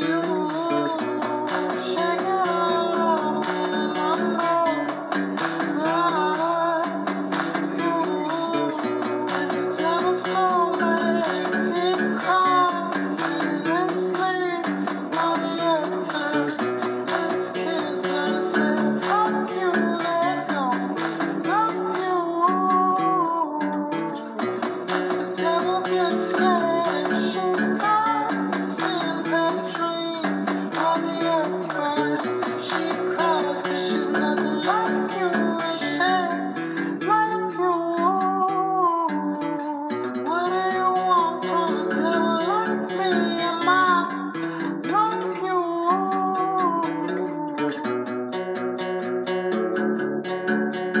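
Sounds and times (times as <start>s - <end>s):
acoustic guitar picking with slides: 0.0s - 51.0s.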